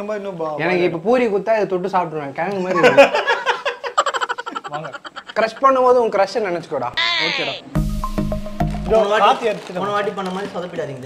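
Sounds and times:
man laughing: 0:02.7 - 0:06.0.

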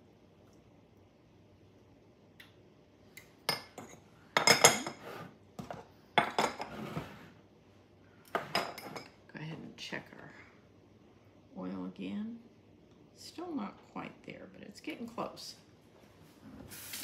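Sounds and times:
dishes clattering on counter: 0:03.5 - 0:07.2, 0:08.3 - 0:09.2.

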